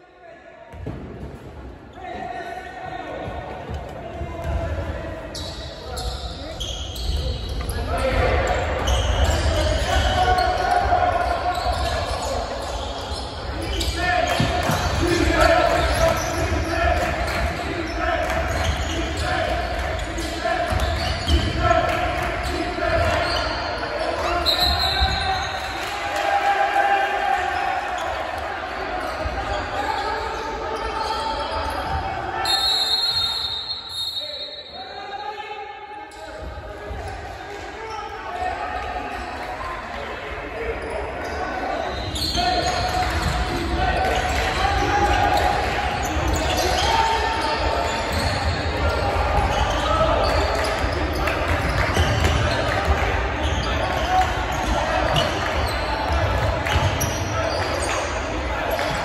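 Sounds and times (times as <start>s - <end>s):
sneakers squeaking: 0.7s - 25.8s, 27.5s - 35.0s, 40.6s - 59.0s.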